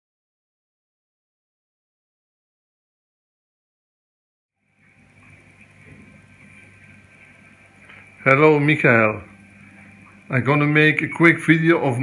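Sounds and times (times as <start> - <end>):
aquarium equipment hum and hiss: 4.6 - 12.0.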